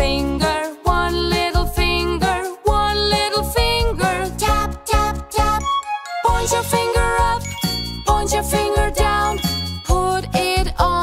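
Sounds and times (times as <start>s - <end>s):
chiming children's song with singing: 0.0s - 11.0s.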